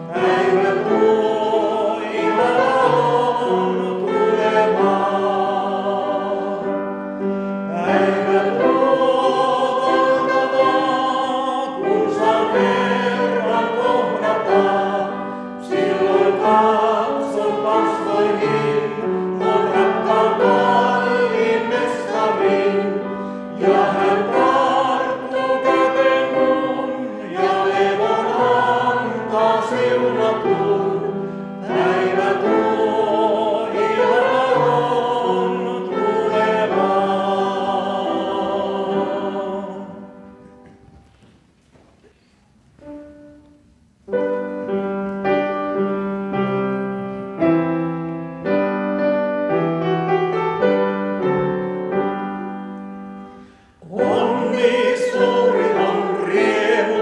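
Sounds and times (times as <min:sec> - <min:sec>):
vocal quartet singing in harmony: 0:00.0 - 0:40.7, 0:49.8 - 0:57.0.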